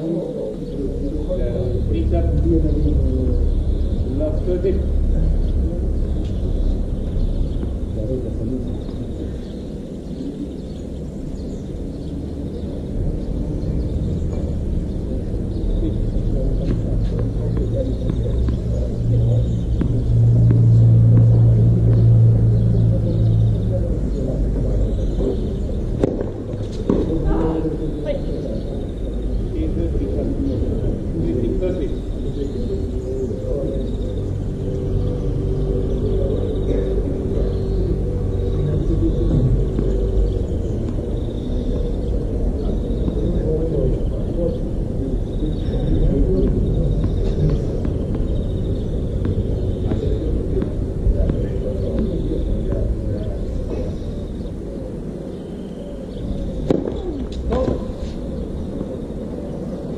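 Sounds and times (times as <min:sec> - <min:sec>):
distant voices: 0:00.0 - 0:59.9
low rumble: 0:00.8 - 0:28.6.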